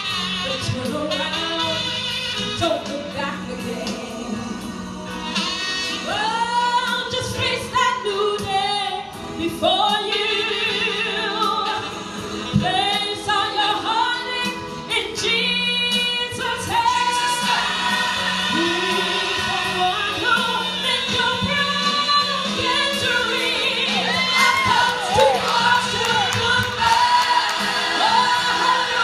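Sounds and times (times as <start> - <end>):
musical accompaniment: 0.0 - 29.0.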